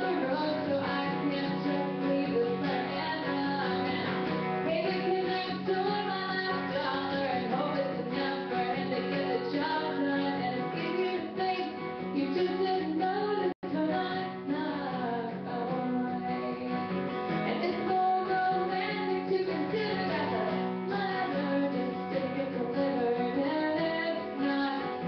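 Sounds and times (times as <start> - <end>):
acoustic guitar strumming: 0.0 - 25.0
woman singing: 0.0 - 25.0.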